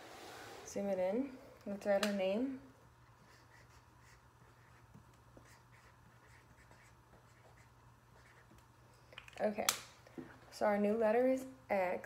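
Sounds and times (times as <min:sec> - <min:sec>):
marker scratching on paper: 0:03.2 - 0:08.6.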